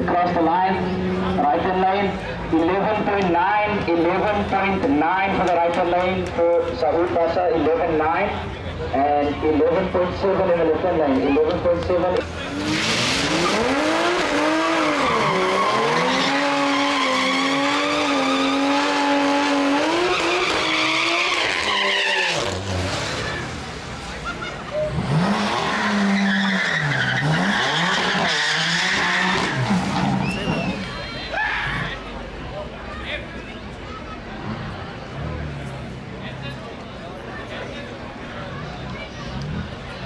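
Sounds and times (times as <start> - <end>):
second engine revving in bursts: 12.2 - 24.0, 24.8 - 30.5
car engine revving: 12.2 - 30.8
tyres squealing: 12.6 - 23.5, 24.3 - 31.9.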